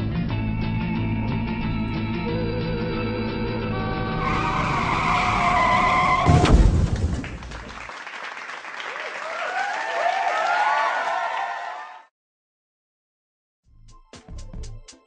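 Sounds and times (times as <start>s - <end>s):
tyre screech sound effect: 4.2s - 6.8s.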